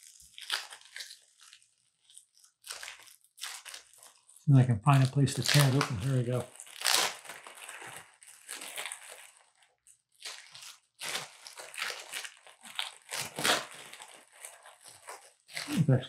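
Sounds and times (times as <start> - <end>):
plastic packaging crinkling: 0.0 - 16.0.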